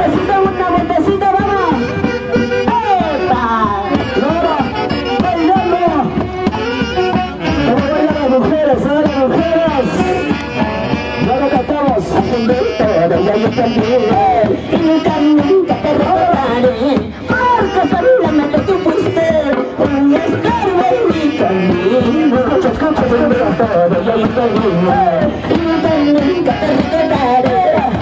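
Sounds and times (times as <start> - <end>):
saxophone band dance tune: 0.0 - 28.0.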